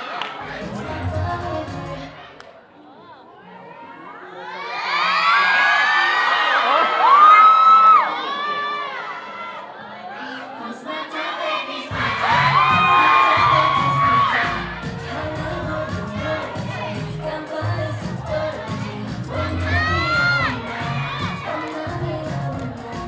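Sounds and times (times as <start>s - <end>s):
song with bass beat: 0.4s - 2.1s, 11.9s - 23.0s
audience cheering and screaming: 4.0s - 17.6s, 18.2s - 23.0s.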